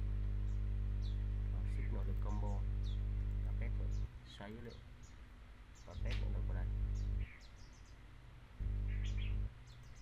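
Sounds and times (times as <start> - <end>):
steady low hum: 0.0 - 10.0
bird chirping: 0.3 - 10.0.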